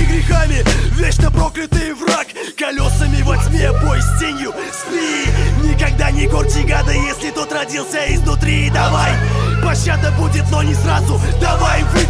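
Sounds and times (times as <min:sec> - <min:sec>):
deep bass line: 0:00.0 - 0:01.6, 0:02.8 - 0:04.2, 0:05.3 - 0:07.2, 0:08.1 - 0:12.0
rapping over a beat: 0:00.0 - 0:12.0.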